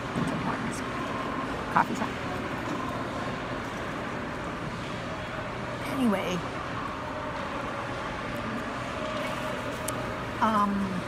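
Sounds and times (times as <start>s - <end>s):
shopping mall background hum: 0.0s - 11.0s.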